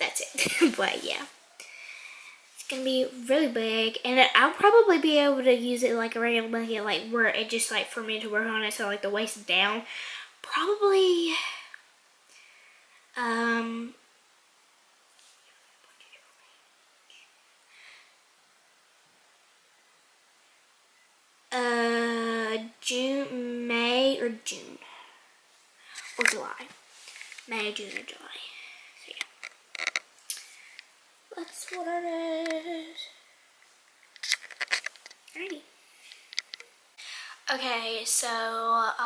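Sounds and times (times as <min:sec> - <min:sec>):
faint whispering: 0:15.2 - 0:17.4.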